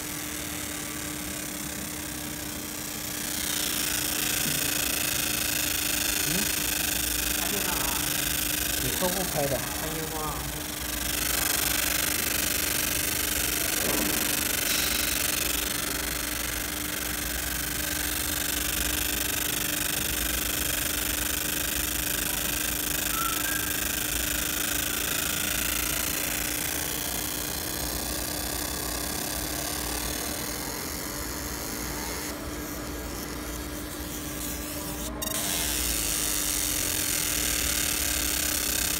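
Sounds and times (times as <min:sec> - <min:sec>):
laser hissing on metal: 0:03.1 - 0:38.9.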